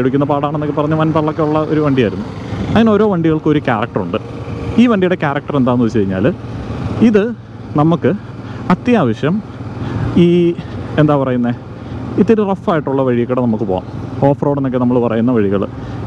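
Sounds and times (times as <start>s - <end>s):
man talking: 0.0s - 6.4s, 7.0s - 9.5s, 10.1s - 15.8s
vehicle and road noise: 0.0s - 16.0s.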